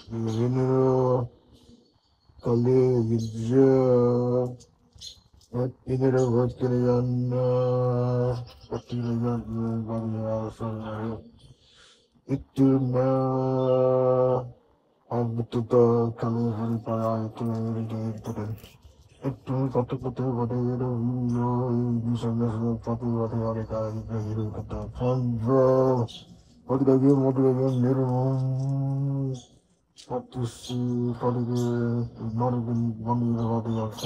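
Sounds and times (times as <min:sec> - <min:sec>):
man chanting long note: 0:00.0 - 0:01.3, 0:12.3 - 0:18.6
low voice chanting: 0:00.0 - 0:34.0.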